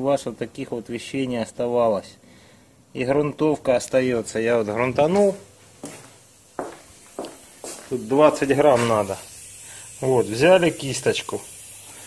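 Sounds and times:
footsteps on workshop floor: 4.7s - 9.0s.

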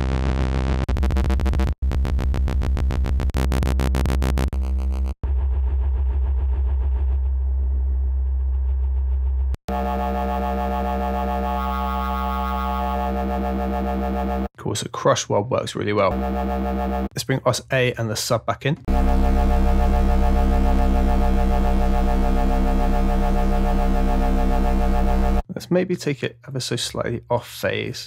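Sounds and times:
pulsing synthesizer bass note: 0.0s - 14.5s, 16.1s - 17.1s, 18.9s - 25.4s.

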